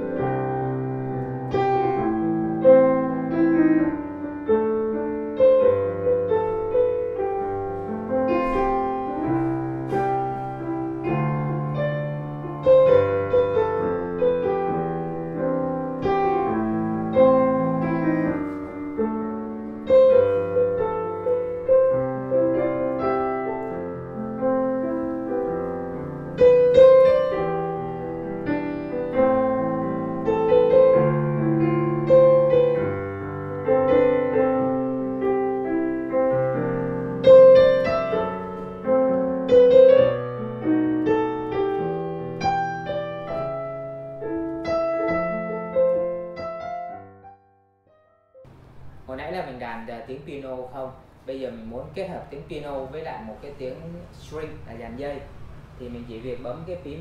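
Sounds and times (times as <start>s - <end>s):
digital piano piece: 0.0s - 57.0s.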